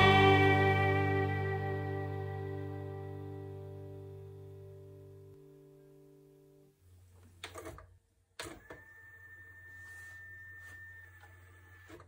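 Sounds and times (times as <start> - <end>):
song chord: 0.0 - 6.7.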